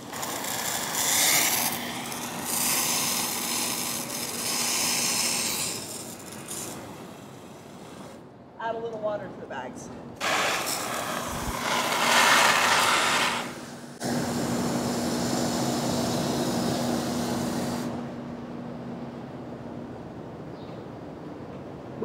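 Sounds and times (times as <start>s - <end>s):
hose spraying water: 0.0s - 8.2s, 10.2s - 18.0s.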